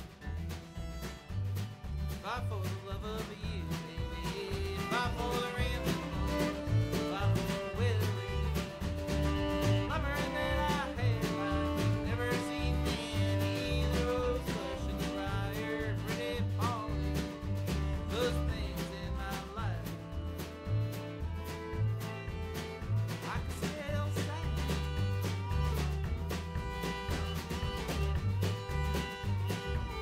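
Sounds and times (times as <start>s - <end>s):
acoustic guitar strumming: 0.0s - 30.0s
drum hits: 0.0s - 30.0s
fiddle: 0.0s - 30.0s
upright bass: 0.0s - 30.0s.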